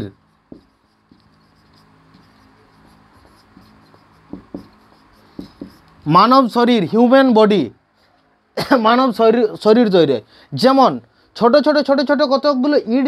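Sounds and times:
marker tip squeaking: 0.0 - 6.5
marker scratching on whiteboard: 0.0 - 7.2.

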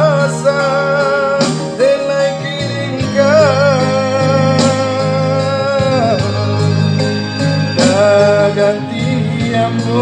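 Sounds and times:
bass line: 0.0 - 10.0
electronic keyboard chords: 0.0 - 10.0
man singing with vibrato: 0.0 - 10.0.

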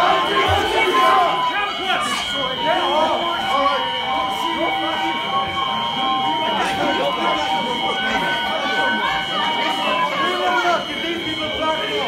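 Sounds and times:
crowd shouting: 0.0 - 12.0
high-pitched alarm sirens: 0.0 - 12.0.

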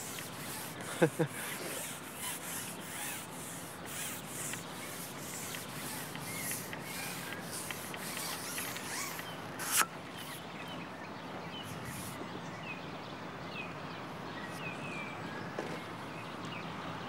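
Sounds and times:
outdoor hiss: 0.0 - 9.8.

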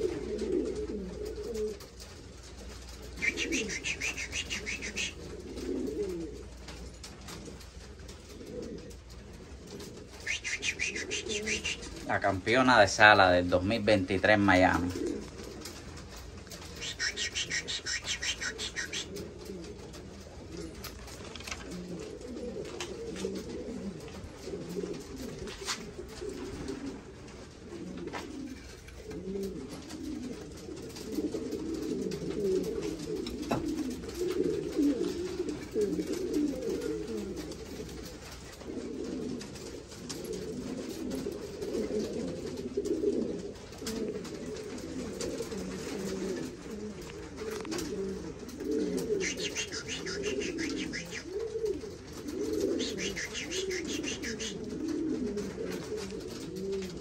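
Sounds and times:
pigeons cooing: 0.0 - 57.0.

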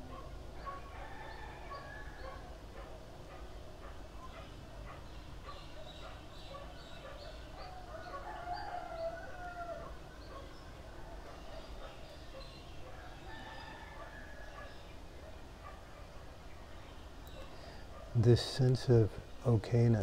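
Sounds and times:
birds chirping: 0.0 - 20.0.

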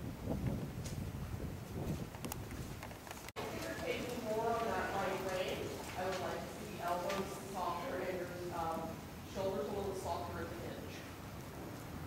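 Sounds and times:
horse hooves on dirt: 0.4 - 7.8
indistinct talking: 3.4 - 11.0.

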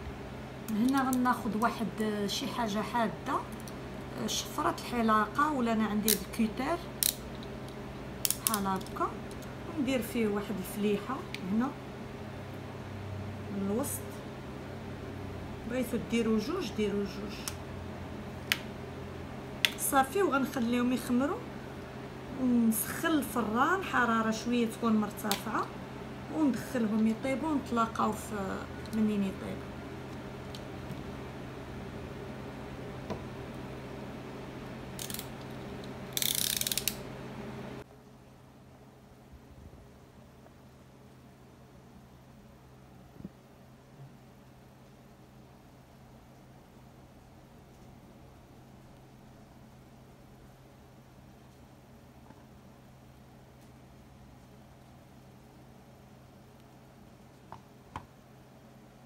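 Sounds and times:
steady low hum: 0.0 - 59.0
rapid ratchet-like clicking: 36.1 - 37.0.

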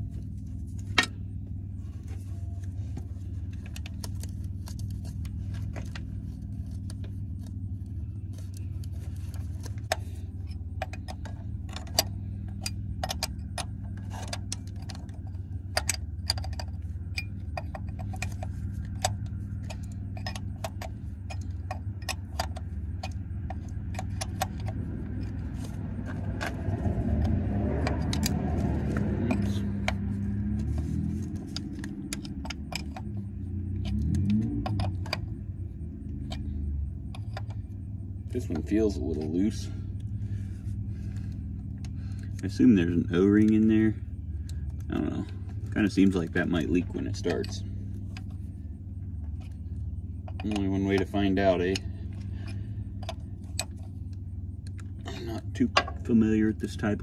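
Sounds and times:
low rumble: 0.0 - 57.0
steady low hum: 0.0 - 57.0.

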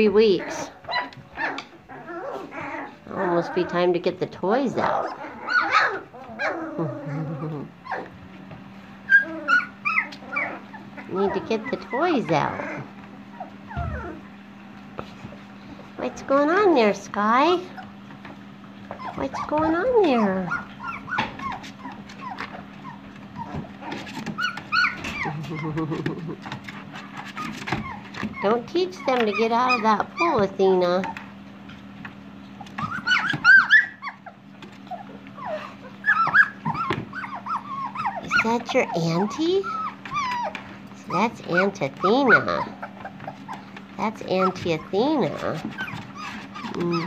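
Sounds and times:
puppies whimpering and yipping: 0.0 - 47.0
puppy whining: 0.0 - 47.0.

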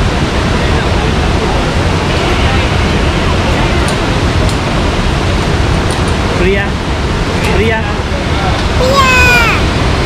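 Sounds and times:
waterfall roaring: 0.0 - 10.0.

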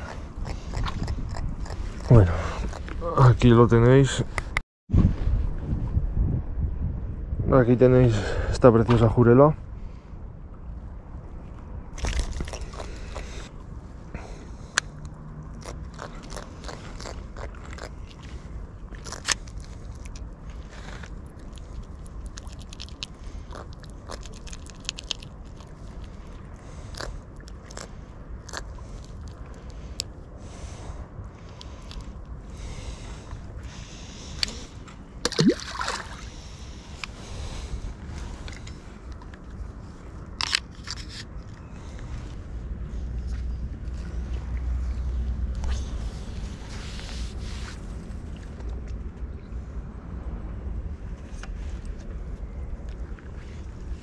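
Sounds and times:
handling noise clicks and scrapes: 40.2 - 42.1.

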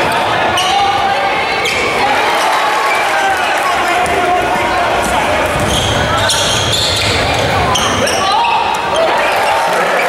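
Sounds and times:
voices echoing in arena: 0.0 - 10.0.

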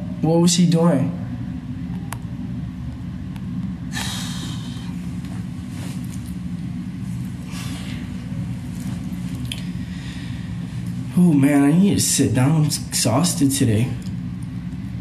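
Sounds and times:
steady low hum: 0.0 - 15.0
person breathy exhales: 3.9 - 5.0.

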